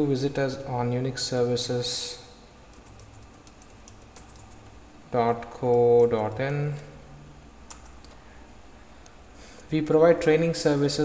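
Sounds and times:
computer keyboard typing: 0:02.7 - 0:04.8, 0:07.7 - 0:08.2.

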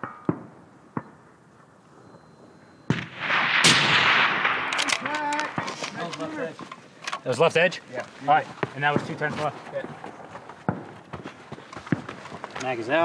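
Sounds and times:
rifle shot: 0:02.9 - 0:06.0.

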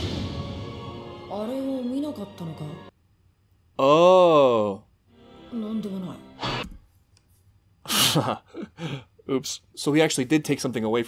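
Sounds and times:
breathy sigh: 0:07.9 - 0:09.2.

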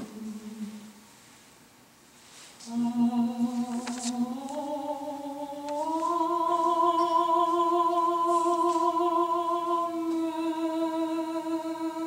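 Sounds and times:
man singing a sustained note: 0:02.6 - 0:12.0.

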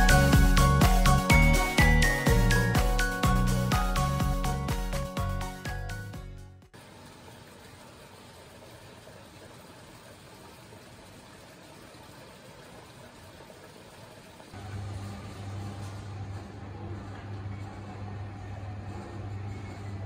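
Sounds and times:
clothes dryer humming: 0:00.0 - 0:20.0
washing machine running: 0:00.0 - 0:20.0.

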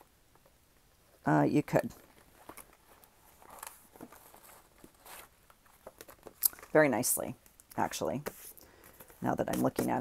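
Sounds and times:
paper rustling: 0:02.0 - 0:06.8.

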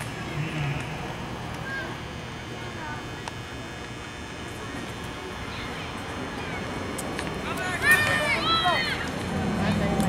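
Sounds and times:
spectators shouting and cheering: 0:07.4 - 0:10.0.

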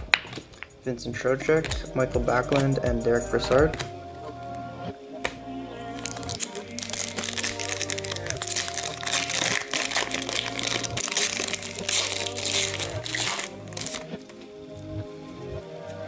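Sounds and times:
background music: 0:00.0 - 0:16.0
foil wrapper crinkling: 0:05.9 - 0:14.4.

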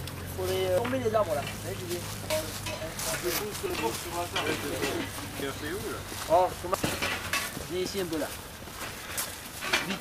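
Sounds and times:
people talking: 0:00.4 - 0:08.4.

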